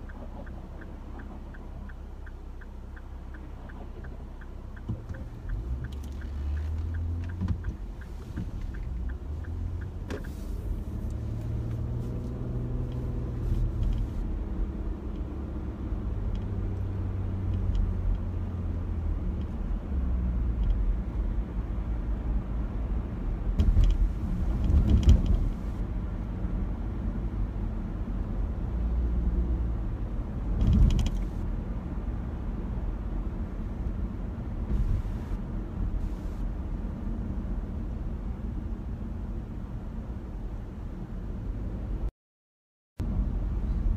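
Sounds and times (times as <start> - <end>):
car cabin road and engine rumble: 0.0 - 42.1, 43.0 - 43.9.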